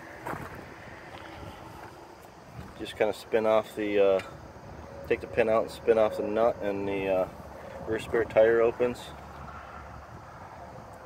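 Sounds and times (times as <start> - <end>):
wind on microphone: 0.2 - 1.9, 7.3 - 11.0.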